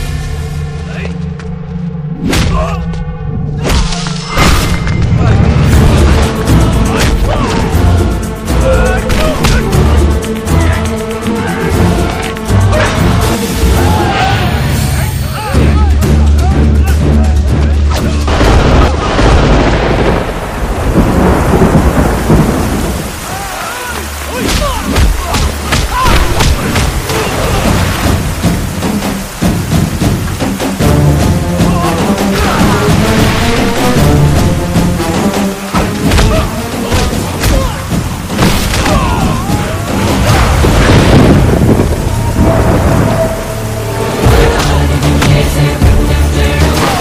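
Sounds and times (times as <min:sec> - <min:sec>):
heavy rain hissing: 0:04.2 - 0:47.0
thunder rumbling: 0:18.2 - 0:47.0.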